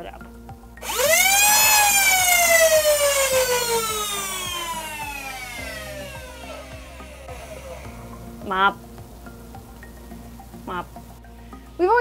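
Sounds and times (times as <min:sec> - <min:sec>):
blaster flywheels revving whine: 0:00.8 - 0:08.2.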